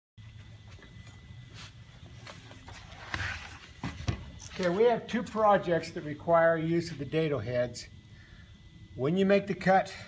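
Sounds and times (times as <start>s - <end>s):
faint high whine: 0.2s - 10.0s
low background hum: 0.2s - 10.0s.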